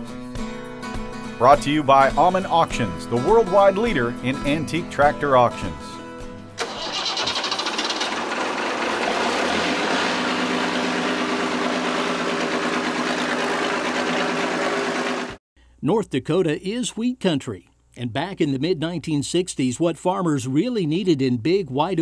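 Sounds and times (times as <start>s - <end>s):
diesel engine starting and idling: 6.6s - 15.4s.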